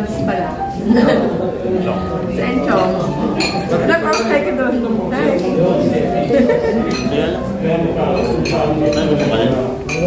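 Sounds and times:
people talking: 0.0 - 10.0
dishes and glasses clinking: 0.6 - 10.0.

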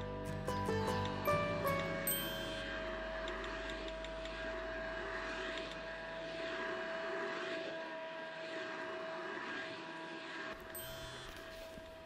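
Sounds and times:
vacuum cleaner running: 1.7 - 12.0.

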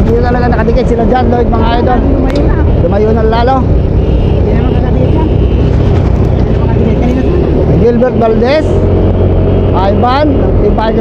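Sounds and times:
wind buffeting microphone: 0.0 - 11.0.

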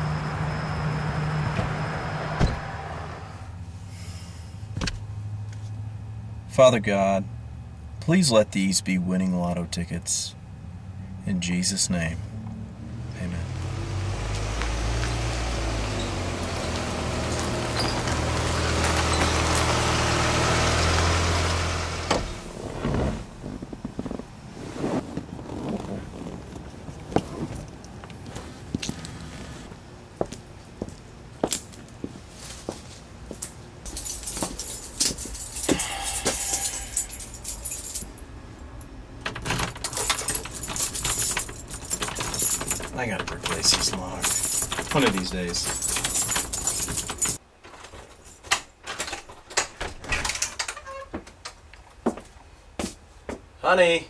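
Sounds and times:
car engine hum: 0.0 - 8.1, 10.4 - 30.0
road noise: 0.0 - 54.0
keys jangling in a door lock: 33.9 - 38.2, 39.2 - 47.4, 48.2 - 51.1.

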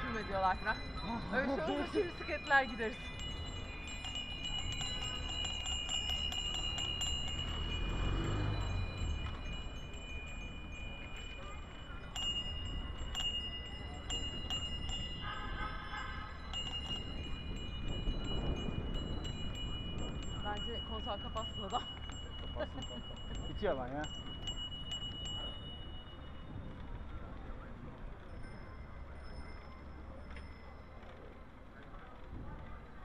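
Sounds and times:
bicycle bells ringing: 0.0 - 32.8
wind and road noise rumble: 0.0 - 33.0.

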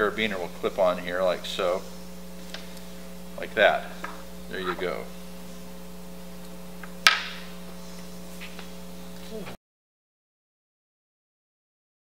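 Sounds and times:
electrical mains hum: 0.0 - 9.6.

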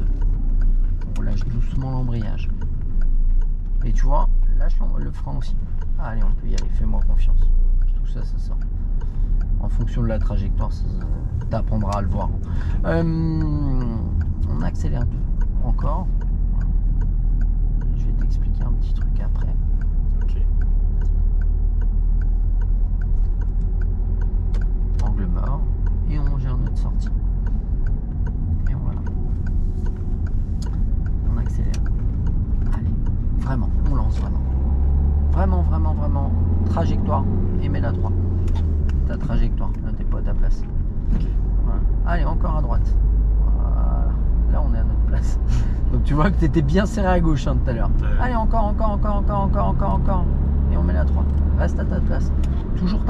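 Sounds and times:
car engine accelerating: 0.0 - 53.0
people talking: 1.1 - 2.5, 3.8 - 8.6, 9.6 - 16.7, 17.8 - 19.6, 25.0 - 27.1, 28.6 - 29.0, 31.2 - 31.8, 32.7 - 34.5, 35.4 - 38.2, 39.1 - 40.6, 41.6 - 42.9, 43.5 - 53.0.

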